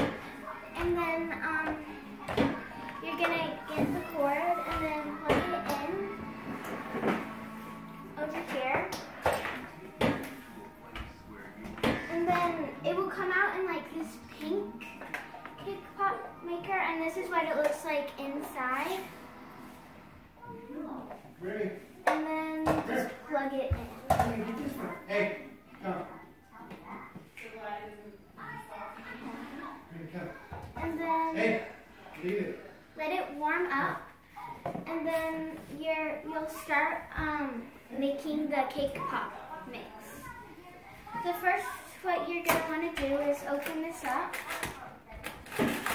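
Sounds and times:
child talking: 0:00.0 - 0:06.2, 0:08.2 - 0:09.0, 0:12.1 - 0:14.8, 0:15.6 - 0:19.1, 0:22.1 - 0:24.2, 0:30.8 - 0:31.5, 0:33.0 - 0:44.4.

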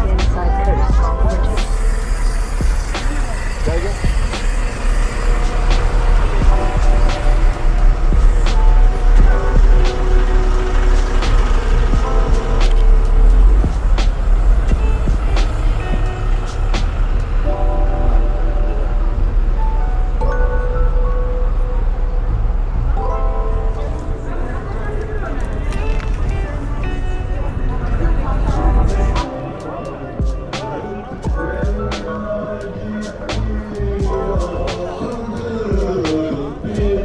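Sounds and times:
background music: 0:00.0 - 0:37.0
buses idling: 0:00.0 - 0:37.0.

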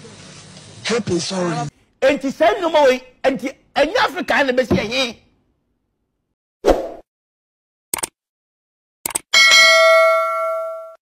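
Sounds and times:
bell ding: 0:09.4 - 0:11.0.

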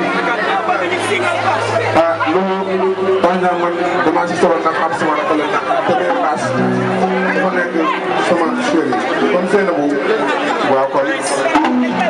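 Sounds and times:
man speaking into a microphone: 0:00.0 - 0:12.0
many people talking: 0:00.0 - 0:12.0.

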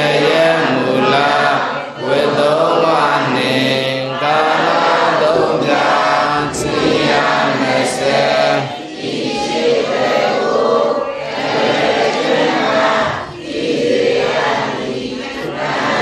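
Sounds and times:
voices chanting in unison: 0:00.0 - 0:16.0.

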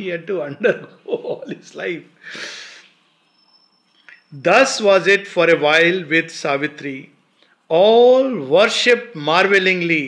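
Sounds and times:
man breathing: 0:02.2 - 0:02.9.

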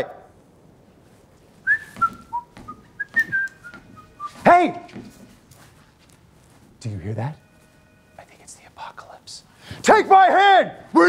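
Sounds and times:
person whistling a tune: 0:01.7 - 0:04.4.

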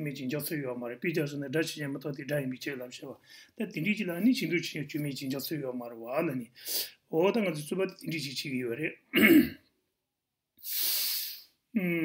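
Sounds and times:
man speaking: 0:00.0 - 0:09.4
man clearing throat: 0:09.1 - 0:09.7.

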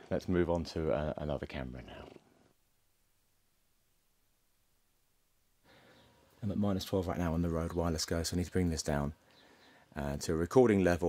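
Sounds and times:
cat purring faintly: 0:00.1 - 0:02.6
room tone hiss: 0:00.1 - 0:11.0.

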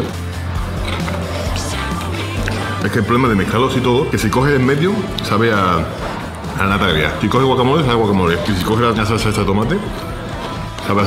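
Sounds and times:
music with deep bass line: 0:00.0 - 0:11.0.

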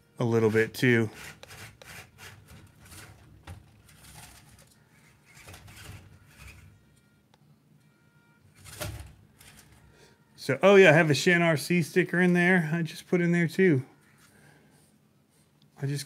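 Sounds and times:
toy car electric motor whirring: 0:00.5 - 0:06.8.

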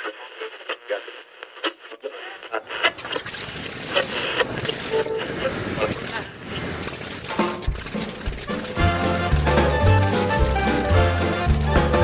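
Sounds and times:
tinny radio-like voice: 0:00.0 - 0:06.4.

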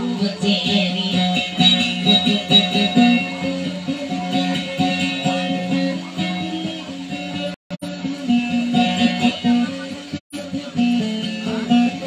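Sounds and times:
guitar picking pattern: 0:00.0 - 0:12.0.

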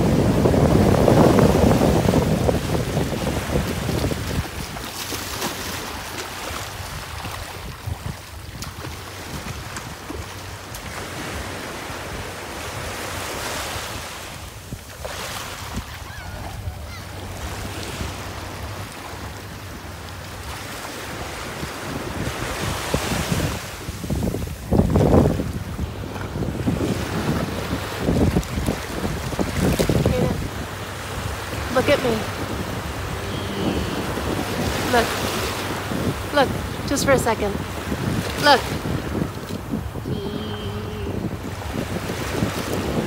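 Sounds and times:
small waves washing up shore: 0:00.0 - 0:43.0
wind rumbling on microphone: 0:00.0 - 0:43.0.

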